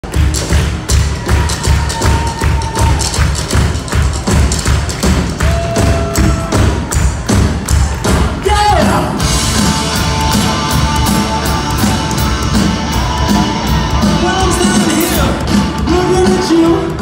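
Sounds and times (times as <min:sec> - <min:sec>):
heavy drumbeat: 0:00.0 - 0:17.0
live rock band playing: 0:00.0 - 0:17.0.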